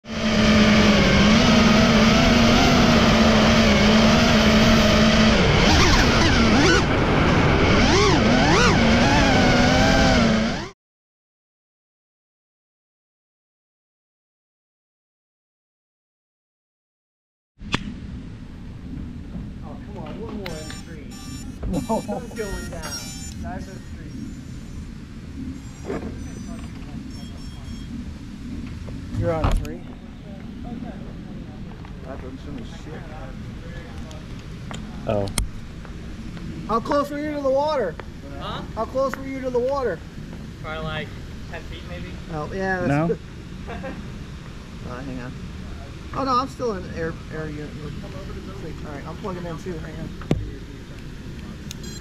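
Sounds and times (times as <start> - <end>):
drone motors whining: 0.0 - 10.8, 19.8 - 31.0
low outdoor rumble: 17.6 - 52.0
distant voices: 18.8 - 52.0
thin high-pitched tones: 20.5 - 24.8, 25.6 - 27.9.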